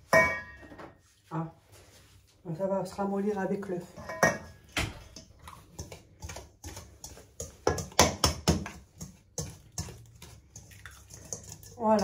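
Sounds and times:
knock on metal mixing bowl: 7.6 - 8.8.

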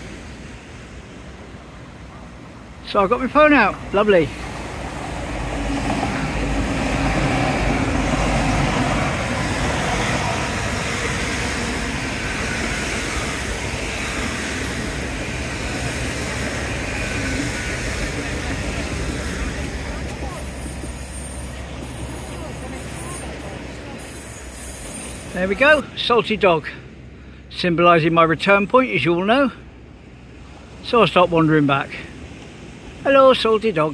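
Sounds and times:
diesel train passing: 0.0 - 33.9.

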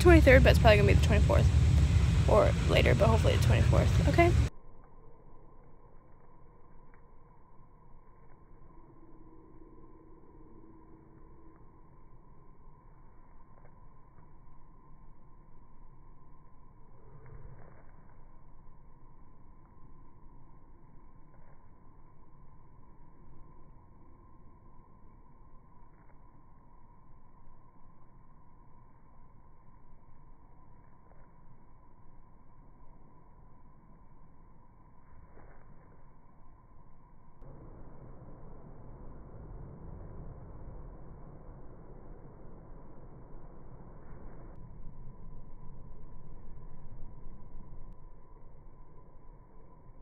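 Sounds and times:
faint low hum: 0.0 - 50.0
faint outdoor background noise: 0.0 - 50.0.

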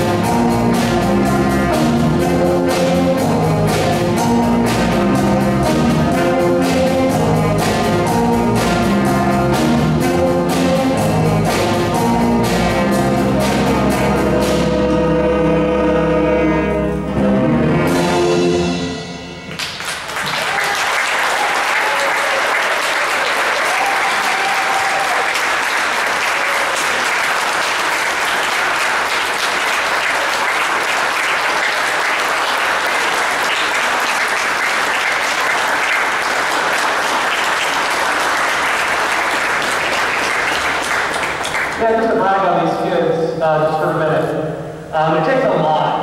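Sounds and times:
audience clapping: 19.5 - 42.2.

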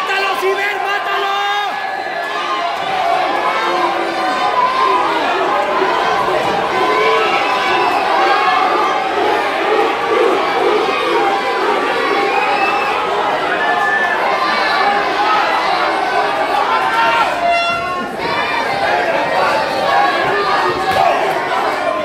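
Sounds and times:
crowd shouting and cheering: 0.0 - 22.0.

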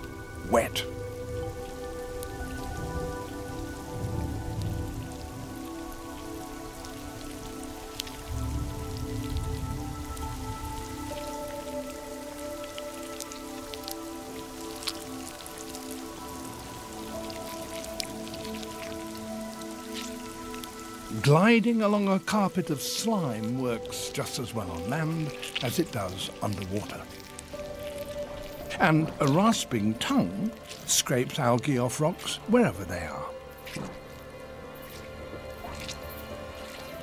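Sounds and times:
rain falling: 0.0 - 37.0
soft sustained musical score: 0.0 - 37.0.

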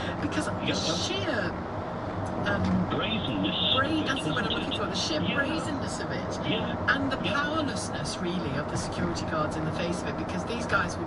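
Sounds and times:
car road noise: 0.0 - 11.0
man talking on radio: 2.5 - 5.8, 6.4 - 6.9.

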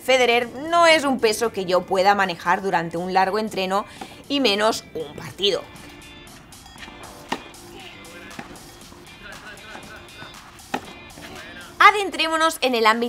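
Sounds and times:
quiet background music: 0.0 - 13.0
tennis ball struck by racket: 3.5 - 11.8.

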